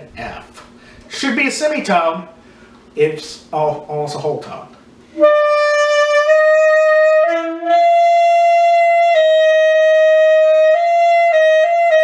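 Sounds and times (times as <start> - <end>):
saxophone high held notes: 5.1 - 12.0.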